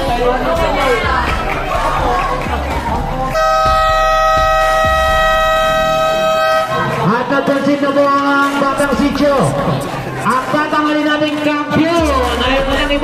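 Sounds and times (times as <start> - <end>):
basketball buzzer tone: 3.3 - 7.0.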